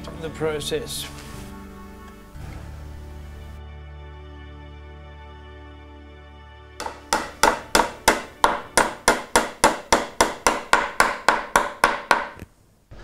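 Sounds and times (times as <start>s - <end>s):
hammer tacking small nails: 6.8s - 12.5s.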